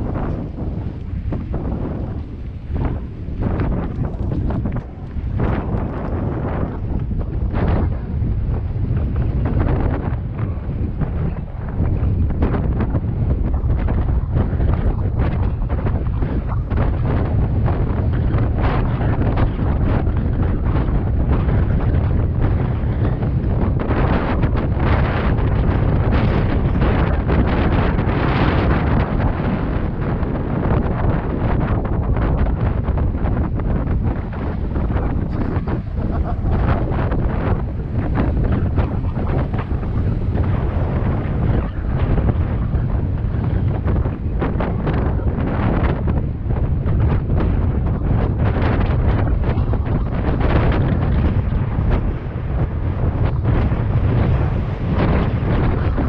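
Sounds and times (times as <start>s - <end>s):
bike tyre noise: 0.0s - 56.0s
wind buffeting microphone: 0.0s - 56.0s.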